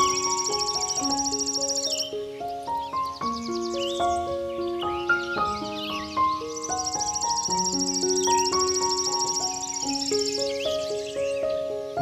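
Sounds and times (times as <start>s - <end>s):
pulsing insect trills: 0.0s - 2.2s, 6.6s - 11.1s
gentle solo piano: 0.0s - 12.0s
short chirping calls: 0.0s - 12.0s.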